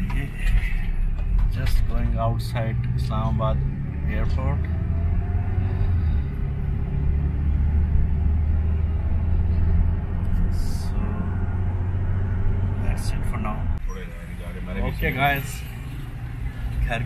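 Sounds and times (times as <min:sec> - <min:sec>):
car engine and road noise inside cabin: 0:00.0 - 0:17.0.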